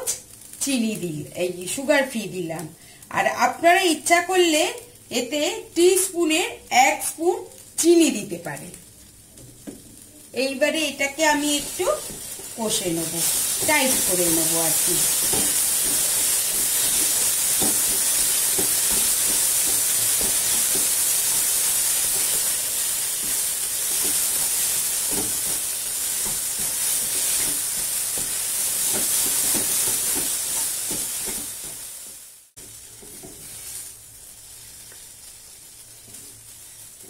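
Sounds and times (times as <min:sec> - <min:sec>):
food sizzling in frying pan: 0:00.0 - 0:37.0
wooden spatula scraping pan: 0:11.4 - 0:21.4, 0:32.6 - 0:33.9.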